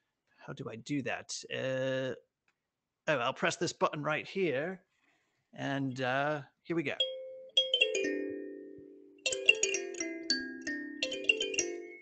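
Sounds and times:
mallet-struck bell jingle: 7.0 - 12.0.

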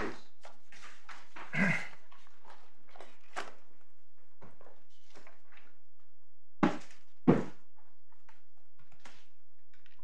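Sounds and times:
person coughing: 1.5 - 2.0.

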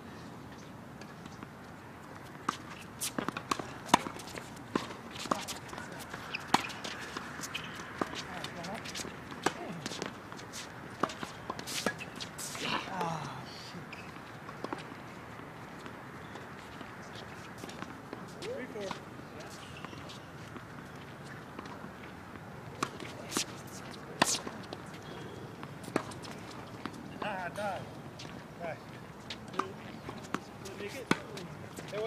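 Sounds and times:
tennis balls struck by racquets: 2.2 - 13.2, 29.3 - 32.0
balls bouncing on hard court: 2.5 - 10.4.

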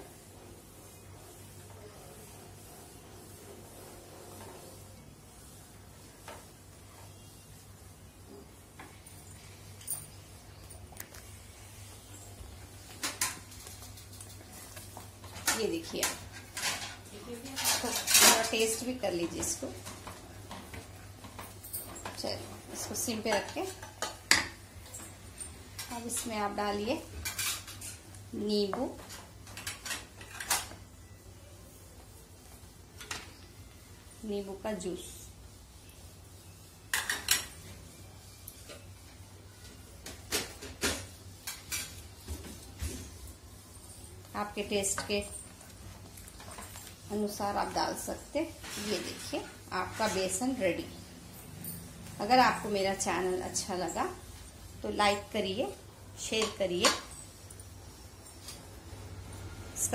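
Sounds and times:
wooden spatula scraping a pan: 13.1 - 20.8, 47.2 - 50.7
utensils knocking and scraping pot: 15.2 - 30.8, 36.9 - 37.6, 44.4 - 45.5, 54.9 - 57.3.

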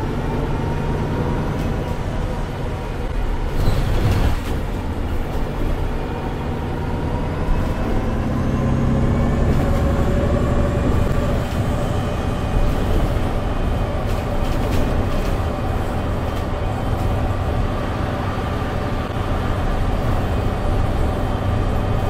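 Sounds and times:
bus engine and drivetrain: 0.0 - 22.0
road noise: 0.0 - 22.0.

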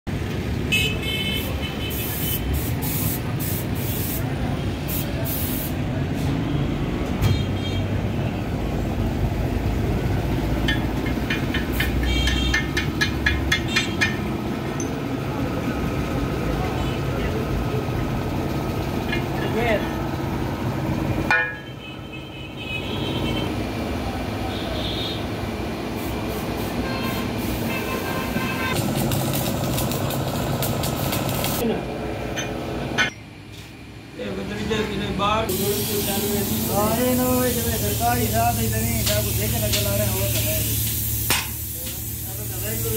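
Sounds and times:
traffic noise: 0.0 - 42.9
vehicle horn toots: 0.7 - 2.5, 12.0 - 12.8, 21.6 - 23.6, 26.8 - 28.8
sharp knocks: 10.7 - 14.3.

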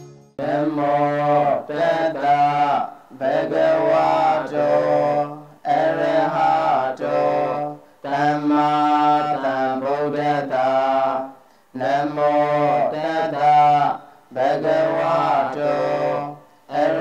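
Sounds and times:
person chanting: 0.0 - 17.0.

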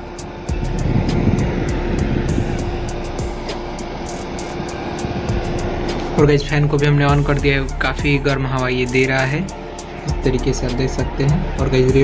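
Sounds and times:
background music: 0.0 - 12.0
exhaust fan running: 0.0 - 12.0.

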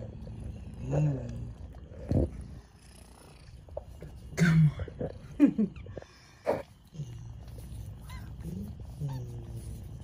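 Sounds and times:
kitten purring: 0.0 - 4.3.

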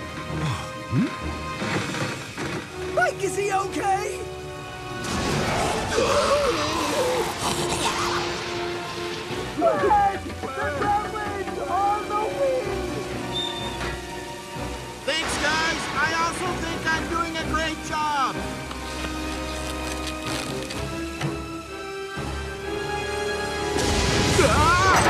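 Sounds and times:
background music: 0.0 - 25.0
rain effects: 0.4 - 10.4, 11.1 - 25.0
vocal sounds: 5.5 - 8.5.

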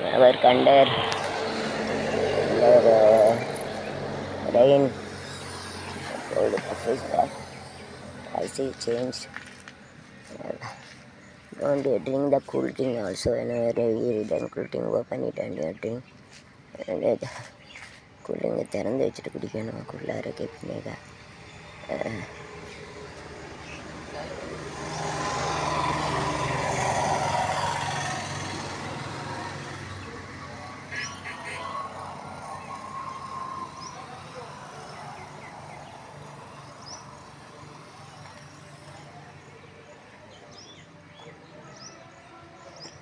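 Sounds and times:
motor vehicle passing: 0.0 - 14.4, 19.0 - 43.0
outdoor background hum: 0.0 - 43.0
small birds chirping: 2.0 - 26.7, 32.3 - 43.0.

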